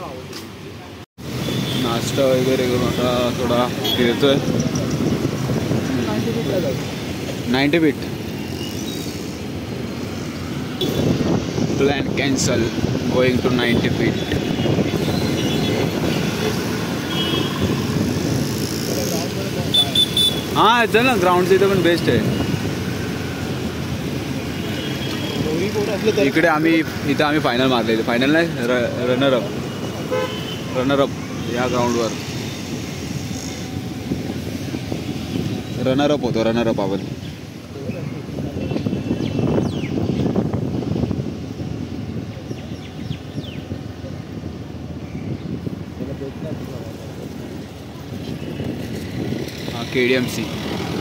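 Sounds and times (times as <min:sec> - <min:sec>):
traffic rumble on wet street: 0:00.0 - 0:51.0
wind buffeting microphone: 0:02.8 - 0:08.5, 0:09.1 - 0:27.4, 0:31.1 - 0:51.0.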